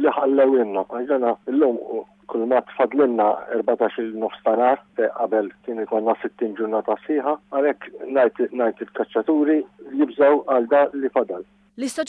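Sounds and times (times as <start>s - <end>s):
man speaking over telephone: 0.0s - 11.4s
low hum: 0.0s - 12.0s.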